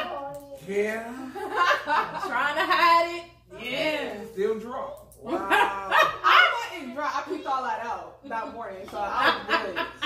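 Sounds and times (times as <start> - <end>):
women laughing and exclaiming: 5.3 - 10.0.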